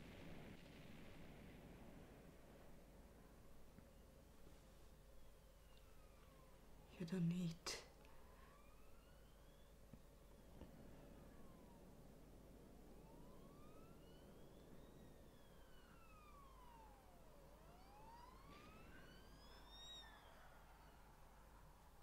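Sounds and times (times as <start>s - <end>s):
faint siren wailing: 0.0s - 22.0s
low steady hum: 0.0s - 22.0s.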